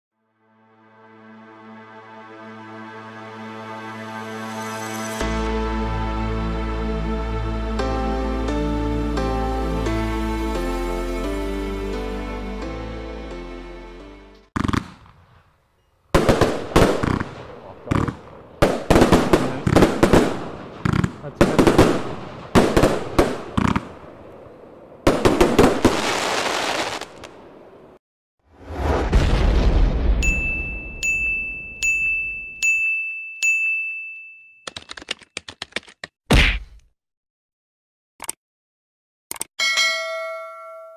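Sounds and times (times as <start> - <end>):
firework shots: 14.6 - 15.5, 16.1 - 24.2, 25.0 - 27.4
whooshing thud: 28.5 - 30.2
bell ding: 30.2 - 34.7, 39.6 - 40.9.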